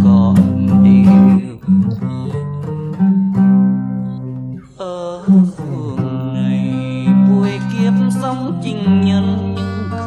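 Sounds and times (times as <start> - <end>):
person singing long notes: 0.0 - 3.3, 4.2 - 10.0
acoustic guitar bolero: 0.0 - 10.0.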